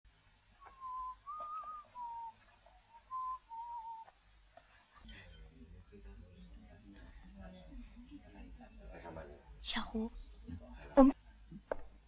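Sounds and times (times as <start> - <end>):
man whistling a tune: 0.6 - 2.4, 3.0 - 4.1.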